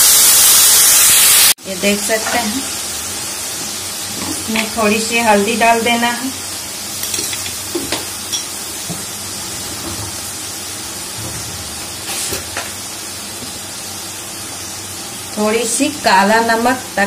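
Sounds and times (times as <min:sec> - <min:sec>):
paste sizzling in hot oil: 0:00.0 - 0:17.0.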